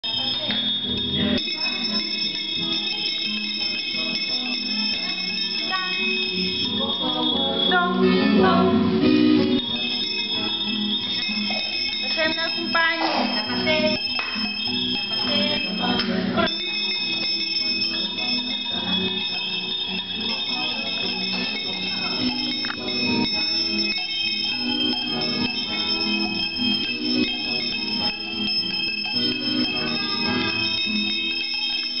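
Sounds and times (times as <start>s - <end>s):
small handbells ringing: 0.0s - 32.0s.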